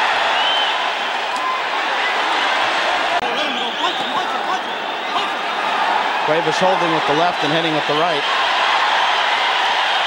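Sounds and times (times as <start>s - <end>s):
crowd voices and shouts: 0.0s - 10.0s.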